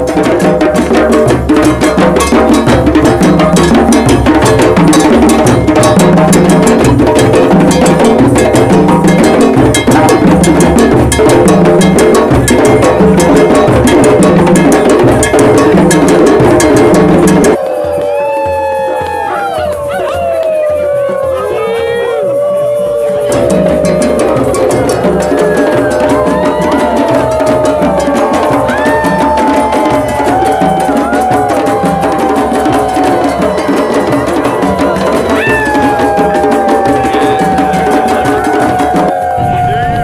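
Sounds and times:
hand drums playing fast rhythm: 0.0s - 40.0s
voices howling: 17.6s - 40.0s.

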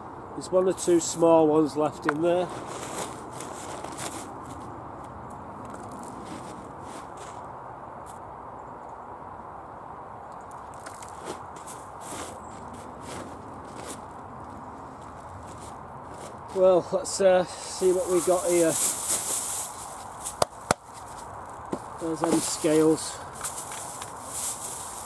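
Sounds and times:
steady background hiss: 0.0s - 25.0s
hands raking damp compost: 2.0s - 4.4s, 10.9s - 14.1s, 15.4s - 25.0s
light crackles and clicks: 10.3s - 11.8s.

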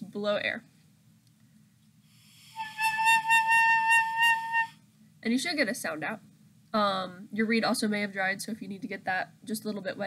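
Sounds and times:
high clarinet mouthpiece tone: 2.6s - 4.8s.

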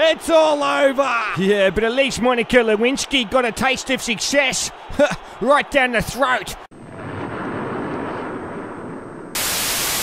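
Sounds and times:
low rumbling of crash fireball: 6.8s - 9.4s
tv static hiss: 9.4s - 10.0s.

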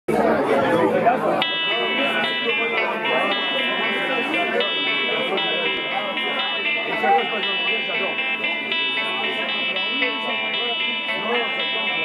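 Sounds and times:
audience chatter: 0.1s - 12.0s.

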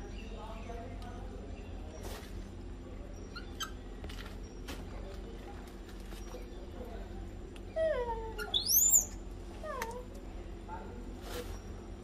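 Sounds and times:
macaque high squeal: 3.1s - 3.8s, 7.8s - 9.2s.

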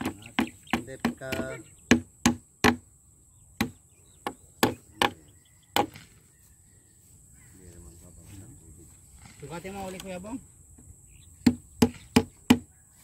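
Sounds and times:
sharp knocking blows: 0.0s - 2.9s, 3.6s - 6.1s, 11.4s - 12.7s.

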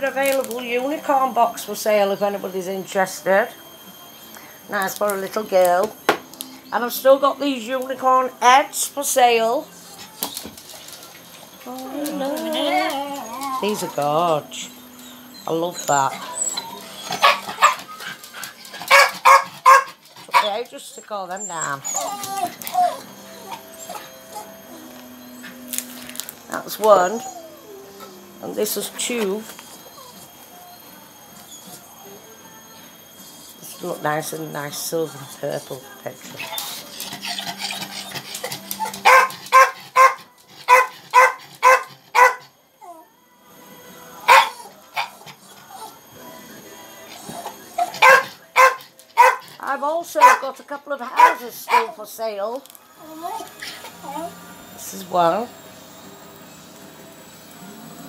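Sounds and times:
dog whining: 11.2s - 34.1s, 36.2s - 43.2s, 44.3s - 46.2s, 47.0s - 50.4s, 51.1s - 52.1s, 52.9s - 54.6s
dog barking: 17.1s - 18.2s, 18.8s - 20.6s, 38.8s - 42.5s, 44.3s - 45.2s, 47.9s - 49.5s, 50.2s - 52.0s.

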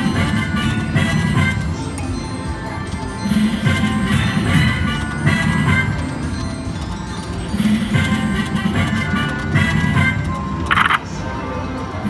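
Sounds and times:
slot machine music: 0.0s - 12.0s.

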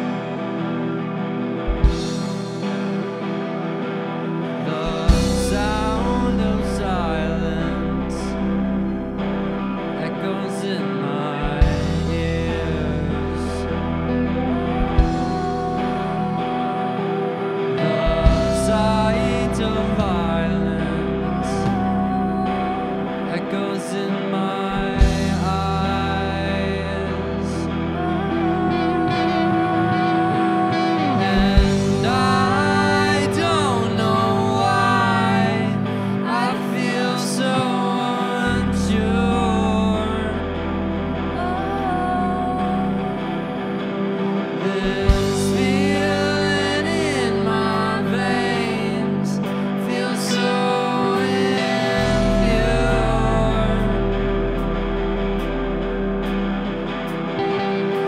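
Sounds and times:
guitar and keyboard chords: 0.0s - 58.0s
indie rock band playing: 0.0s - 58.0s.

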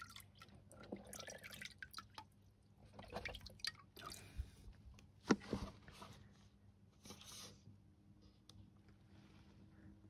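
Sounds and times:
water dripping in tank: 0.0s - 4.4s.

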